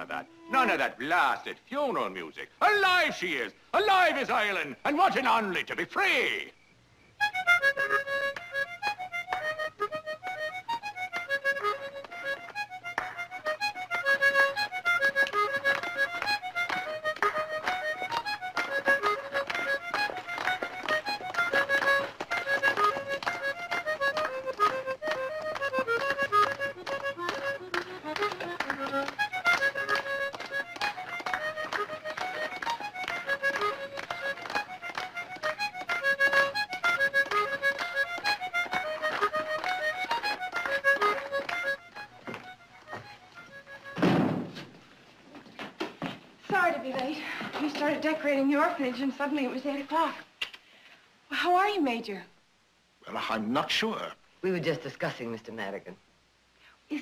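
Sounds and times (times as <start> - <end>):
lively accordion tune: 0.0 - 2.9, 7.2 - 44.1.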